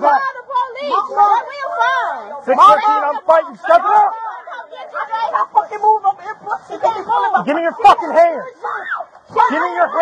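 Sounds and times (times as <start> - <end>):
several voices talking: 0.0 - 10.0.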